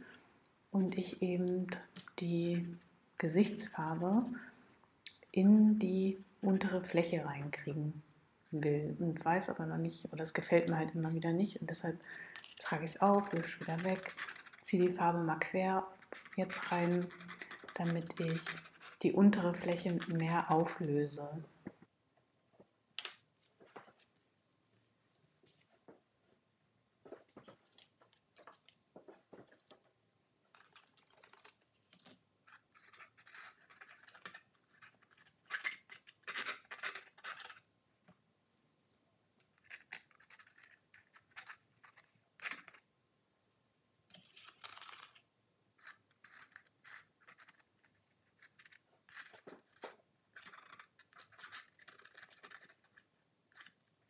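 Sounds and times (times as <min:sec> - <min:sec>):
palette knife scraping paint on canvas: 0:00.8 - 0:07.1, 0:12.3 - 0:20.9.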